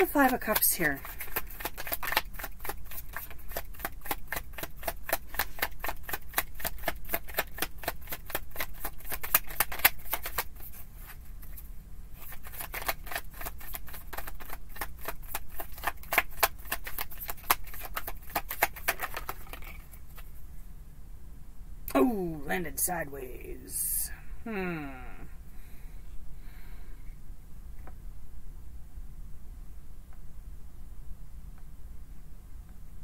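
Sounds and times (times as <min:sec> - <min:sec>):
cards being shuffled: 0:00.0 - 0:20.3.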